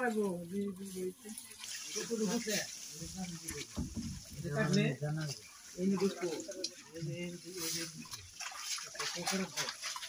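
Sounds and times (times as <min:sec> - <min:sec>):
men talking: 0:00.0 - 0:09.9
hands splashing in muddy water: 0:05.2 - 0:10.0.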